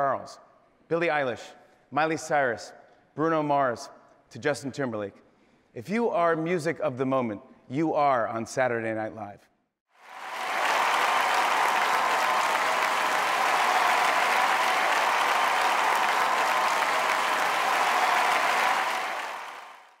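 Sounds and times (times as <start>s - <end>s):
large audience applauding: 10.0s - 20.0s.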